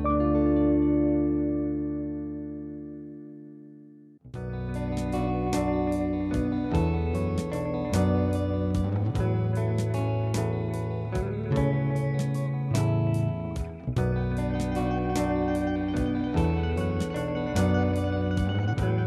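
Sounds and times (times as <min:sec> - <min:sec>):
low bass notes: 0:00.0 - 0:19.0
flamenco guitar: 0:04.4 - 0:19.0.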